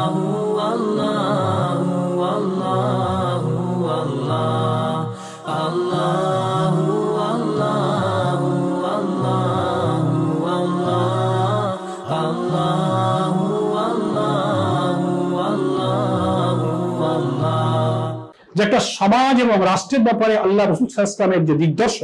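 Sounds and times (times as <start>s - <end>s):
chanted singing: 0.0s - 18.3s.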